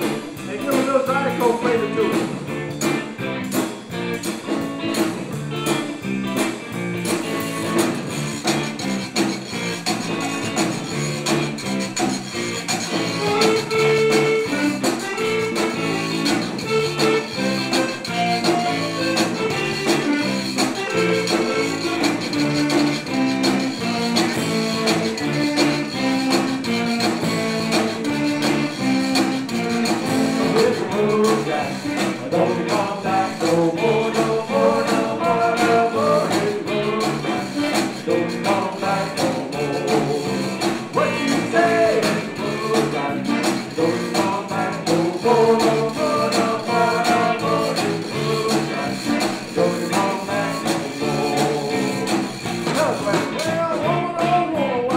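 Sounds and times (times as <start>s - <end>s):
accordion melody: 0.0s - 54.7s
drums: 0.0s - 54.9s
electric guitar: 0.0s - 54.9s.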